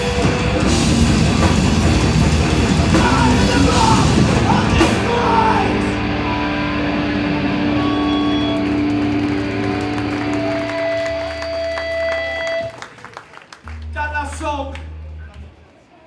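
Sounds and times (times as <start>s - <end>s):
guitars ringing through amplifiers: 0.0s - 12.7s.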